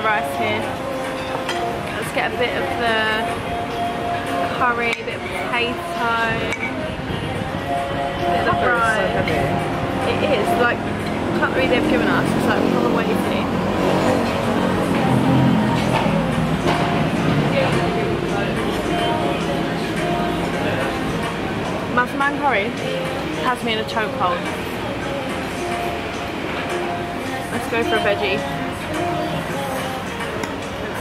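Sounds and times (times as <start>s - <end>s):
people talking: 0.0s - 0.7s, 2.0s - 3.3s, 4.5s - 6.7s, 8.2s - 10.8s, 11.4s - 14.1s, 17.2s - 21.1s, 21.9s - 22.8s, 23.4s - 24.6s, 27.5s - 28.5s
busy dining place din: 0.0s - 31.0s
faint music: 0.0s - 31.0s.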